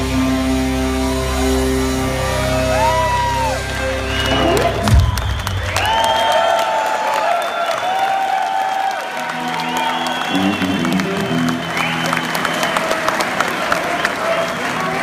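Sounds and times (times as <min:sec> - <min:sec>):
bass guitar: 0:00.0 - 0:05.8
audience clapping and cheering: 0:00.0 - 0:15.0.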